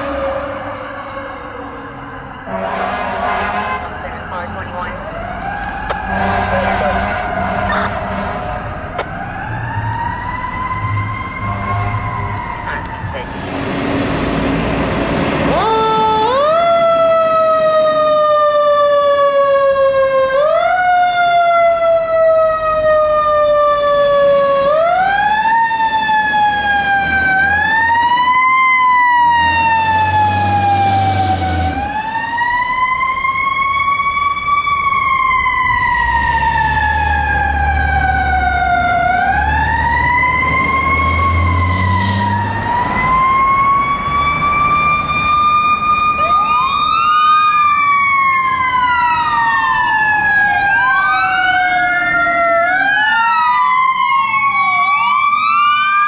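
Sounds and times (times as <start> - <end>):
deep low horn blasts: 2.5 - 4.2, 6.0 - 8.7.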